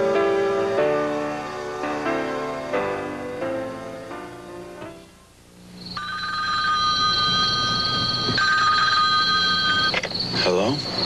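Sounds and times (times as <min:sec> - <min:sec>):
telephone bell ringing: 0:05.9 - 0:10.4.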